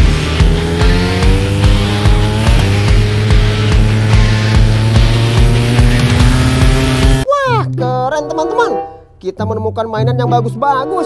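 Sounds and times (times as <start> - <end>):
music with heavy beat: 0.0 - 7.2
racing motorcycle engines accelerating: 0.0 - 7.2.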